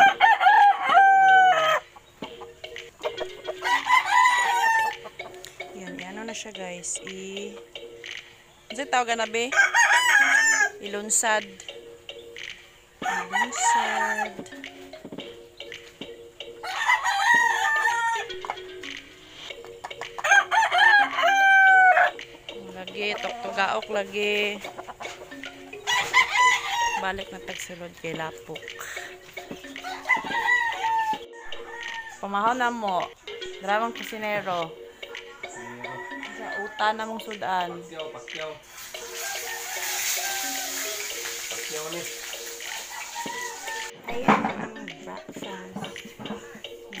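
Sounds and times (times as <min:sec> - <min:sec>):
rooster crowing: 0:00.0 - 0:01.9, 0:03.5 - 0:05.1, 0:09.5 - 0:10.8, 0:13.0 - 0:14.6, 0:16.6 - 0:18.4, 0:20.2 - 0:22.2, 0:25.8 - 0:27.2, 0:29.8 - 0:32.3, 0:35.4 - 0:37.1, 0:39.0 - 0:41.4, 0:42.7 - 0:44.0.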